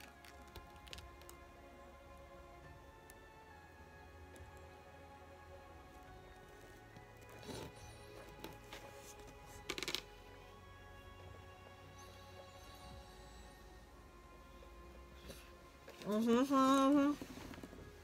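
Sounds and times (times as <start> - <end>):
faint background music: 0.0 - 18.0.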